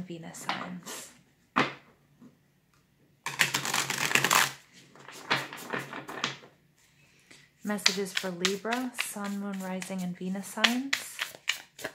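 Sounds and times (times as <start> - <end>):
cards being riffle-shuffled: 3.3 - 6.2, 7.8 - 10.0, 10.6 - 11.9.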